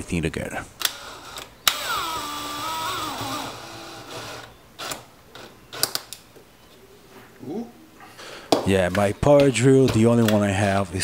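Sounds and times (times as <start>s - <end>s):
power drill whine: 0.9s - 5.9s.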